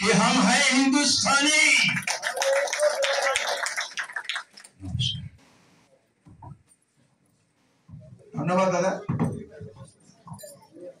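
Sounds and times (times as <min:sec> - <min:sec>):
people's voices in a hall: 0:00.0 - 0:11.0.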